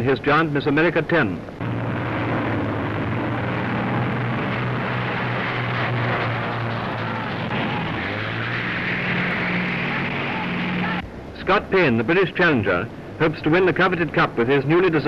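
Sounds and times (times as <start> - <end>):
speedboat engines droning: 0.0 - 15.0.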